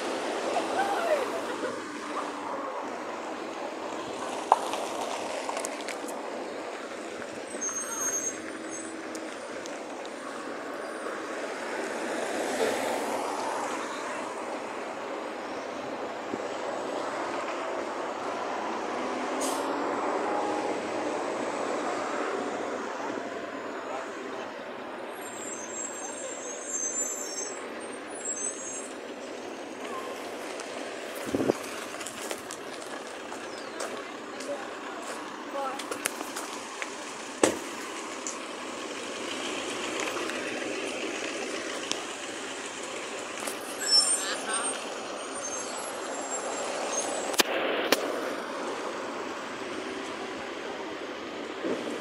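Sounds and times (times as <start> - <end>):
road traffic noise: 0.0 - 52.0.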